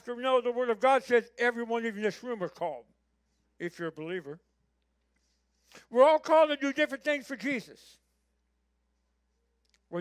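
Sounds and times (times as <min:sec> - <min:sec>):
man speaking: 0:00.0 - 0:02.9, 0:03.6 - 0:04.5, 0:05.7 - 0:08.1.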